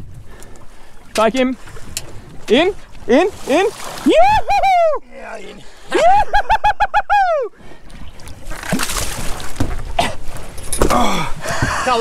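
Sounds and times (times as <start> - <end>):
water splashing: 0.0 - 6.4, 7.6 - 12.0.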